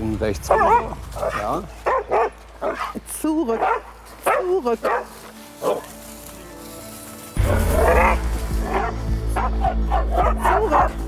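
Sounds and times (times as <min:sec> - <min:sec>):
background music: 0:00.0 - 0:11.0
dog barking sharply: 0:00.5 - 0:03.0, 0:03.6 - 0:05.8.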